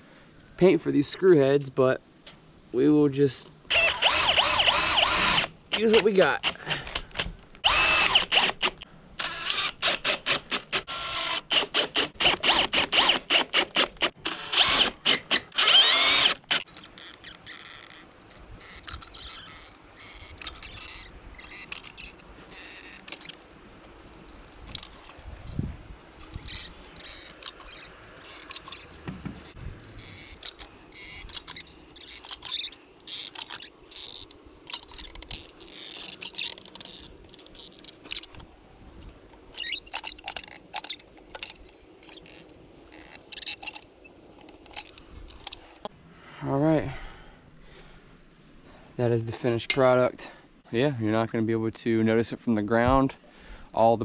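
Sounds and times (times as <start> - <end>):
cordless drill driving screws: 3.7 - 7.0, 7.6 - 18.0
caulking gun clicks and scrapes: 4.1 - 25.2, 26.2 - 38.5, 39.4 - 45.9.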